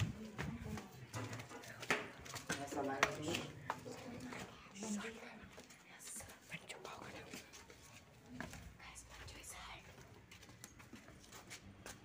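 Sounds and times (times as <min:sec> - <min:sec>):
person whispering: 0:04.6 - 0:07.5, 0:08.8 - 0:10.0.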